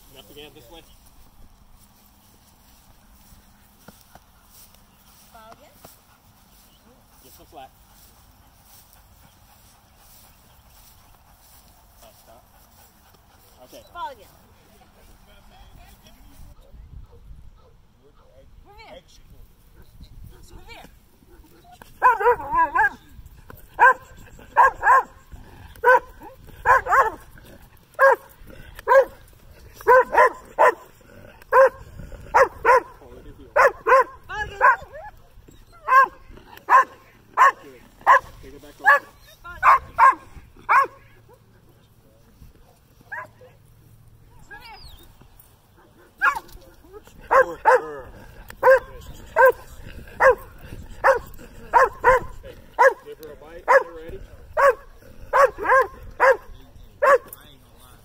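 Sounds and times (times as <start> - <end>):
dog barking: 22.0 - 23.0, 23.8 - 25.2, 25.8 - 27.2, 28.0 - 29.2, 29.8 - 30.9, 31.5 - 33.0, 33.6 - 35.1, 35.8 - 41.4, 46.2 - 46.5, 47.3 - 48.0, 48.6 - 49.6, 50.2 - 53.1, 53.7 - 54.0, 54.6 - 57.4.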